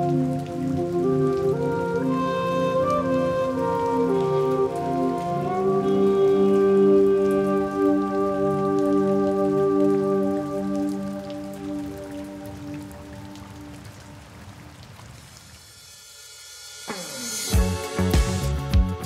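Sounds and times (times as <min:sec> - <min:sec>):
ambient music chord: 0:00.0 - 0:13.8
steady rain: 0:00.0 - 0:19.0.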